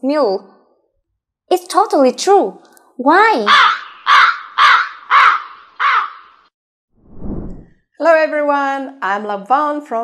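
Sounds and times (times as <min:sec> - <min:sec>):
crow cawing: 0:03.4 - 0:06.5.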